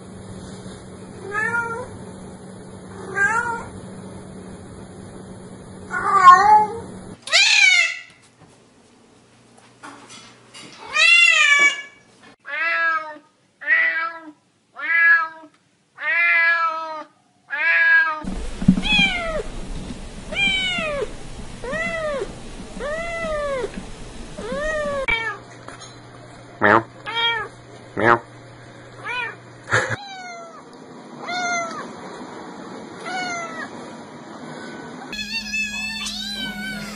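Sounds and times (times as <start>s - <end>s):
cats meowing: 20.3s - 21.0s, 22.8s - 23.7s, 24.4s - 25.4s, 35.1s - 36.9s.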